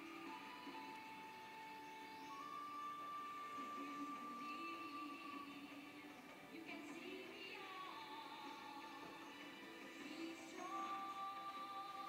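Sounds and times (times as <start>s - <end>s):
faint television music: 0.0s - 12.0s.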